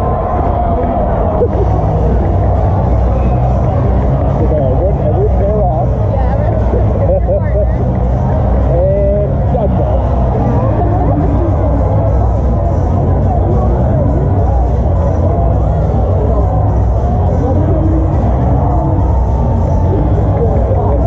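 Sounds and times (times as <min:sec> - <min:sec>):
crowd chatter: 0:00.0 - 0:21.0
music over pa: 0:00.0 - 0:21.0.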